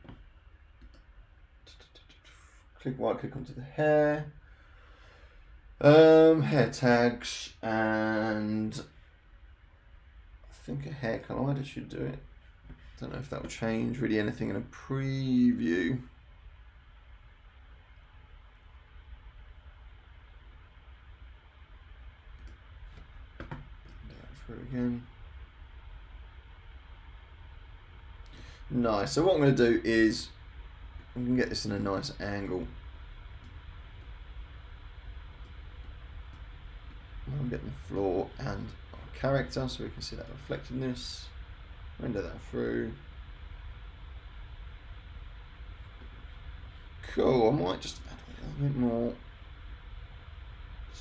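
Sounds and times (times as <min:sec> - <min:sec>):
background hiss with low hum: 0:00.0 - 0:51.0.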